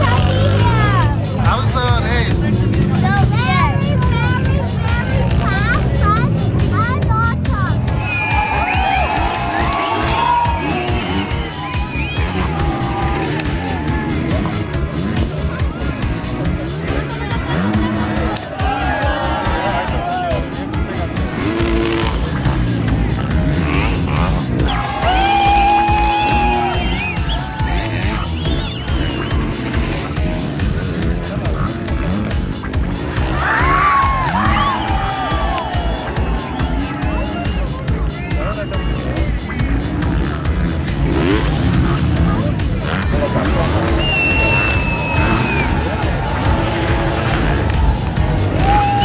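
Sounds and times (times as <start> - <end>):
crowd voices: 0.0 - 49.0
dirt bike engines revving: 0.0 - 49.0
music with electronic beat: 0.0 - 49.0.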